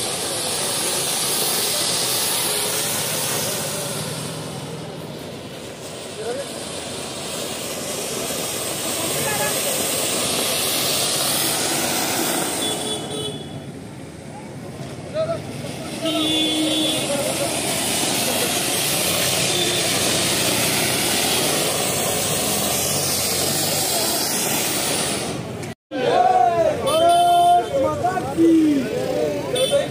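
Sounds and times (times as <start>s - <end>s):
fountain fireworks hissing: 0.0s - 25.8s, 26.4s - 29.9s.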